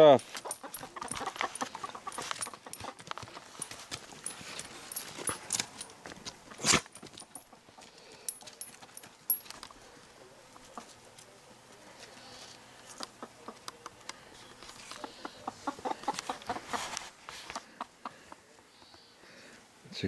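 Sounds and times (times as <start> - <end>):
dog paws scuffling: 0.0 - 9.7.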